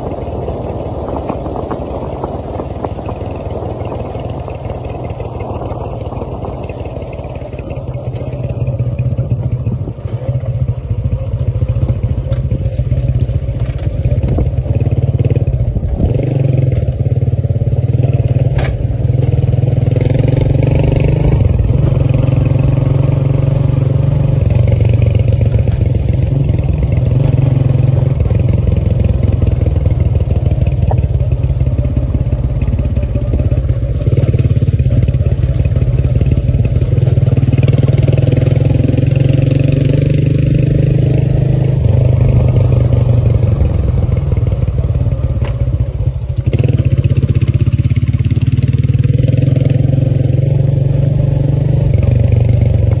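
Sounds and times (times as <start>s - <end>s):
small motorcycle engine running: 0.0s - 53.0s.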